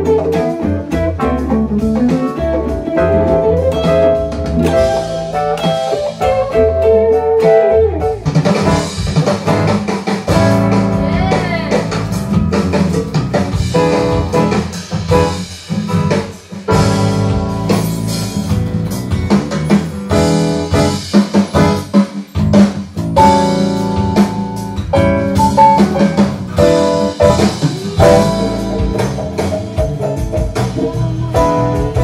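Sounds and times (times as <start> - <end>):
drums: 0.0 - 32.0
guitar: 0.0 - 32.0
piano: 0.0 - 32.0.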